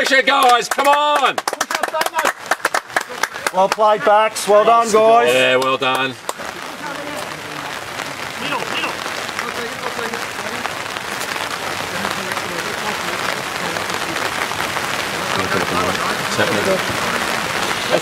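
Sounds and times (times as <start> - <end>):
rain pattering on canopy: 0.0 - 18.0.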